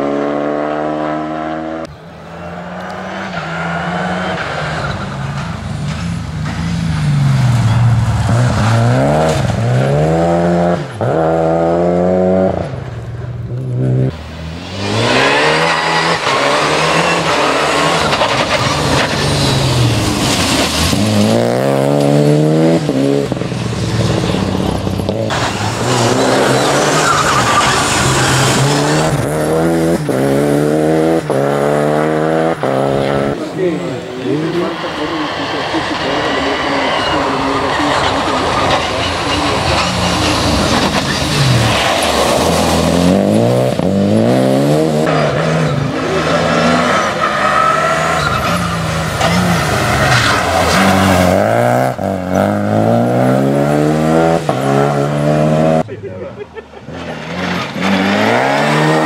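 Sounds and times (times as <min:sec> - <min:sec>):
rally car engine revving hard: 0:00.0 - 0:05.0, 0:07.6 - 0:12.7, 0:13.7 - 0:55.9, 0:56.8 - 0:59.0.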